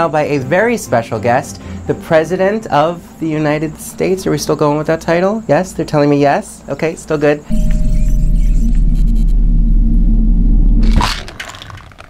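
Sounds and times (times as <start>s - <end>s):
low rumbling drone: 7.5s - 11.3s
burst of higher noise: 7.5s - 11.4s.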